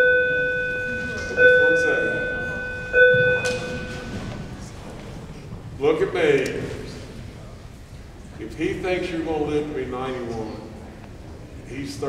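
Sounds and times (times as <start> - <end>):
electronic beep: 0.0 - 4.6.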